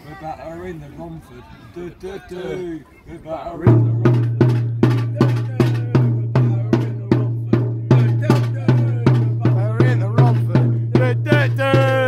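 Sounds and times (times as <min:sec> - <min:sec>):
bass drum beating steadily: 0:03.6 - 0:12.0
crowd singing: 0:05.0 - 0:12.0.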